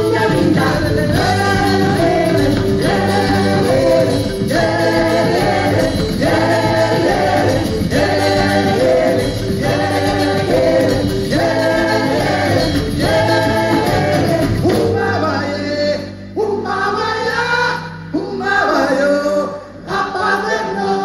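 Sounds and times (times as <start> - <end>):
live band music: 0.0 - 21.0
voices singing together: 0.0 - 21.0.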